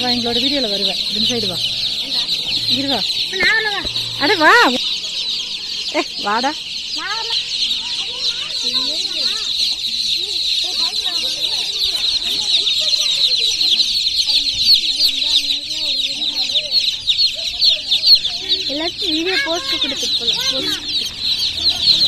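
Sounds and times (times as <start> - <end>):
baby chicks peeping: 0.0 - 22.0.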